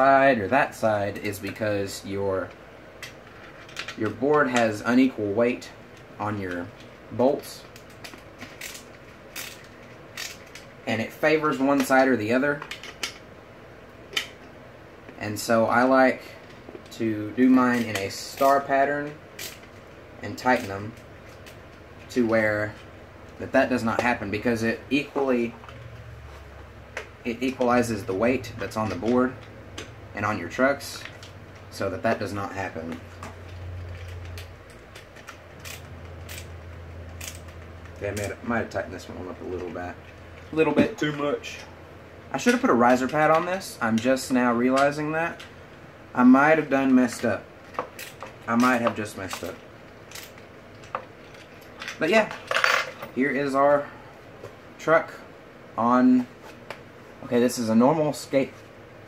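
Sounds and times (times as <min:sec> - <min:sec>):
steady low hum: 0:00.0 - 0:59.0
person speaking: 0:15.1 - 0:19.2, 0:20.2 - 0:21.0, 0:22.0 - 0:26.0, 0:27.1 - 0:33.6, 0:37.9 - 0:45.5, 0:48.4 - 0:49.7.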